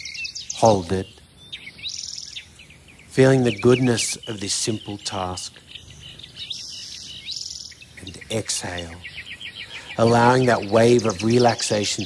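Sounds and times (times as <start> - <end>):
birds chirping: 0.0 - 12.0
rapid high bird trill: 0.0 - 12.0.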